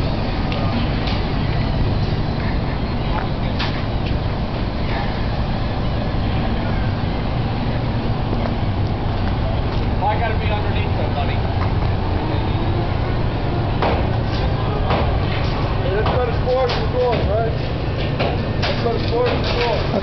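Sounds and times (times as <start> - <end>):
crane diesel engine rumbling: 0.0 - 20.0
sharp knocks: 13.8 - 15.2, 18.0 - 19.7.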